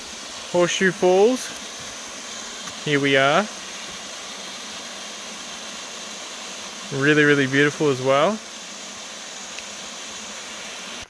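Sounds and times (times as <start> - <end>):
waterfall rushing over rocks: 0.0 - 4.0.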